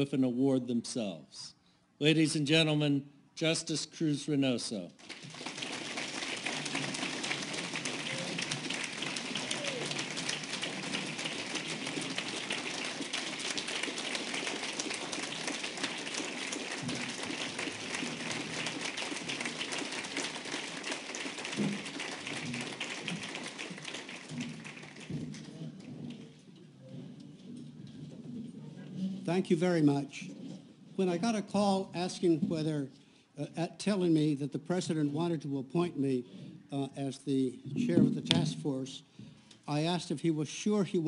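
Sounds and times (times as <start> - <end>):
audience applause: 5.0 - 26.3.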